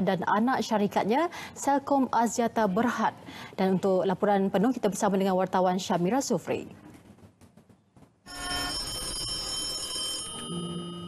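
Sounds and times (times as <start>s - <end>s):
telephone bell ringing: 8.3s - 11.0s.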